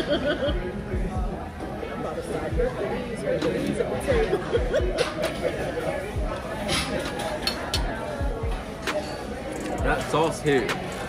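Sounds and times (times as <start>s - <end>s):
background music with low beat: 0.0s - 7.0s, 7.6s - 11.0s
murmur of voices: 0.0s - 11.0s
cutlery clicking on plates: 6.6s - 8.0s.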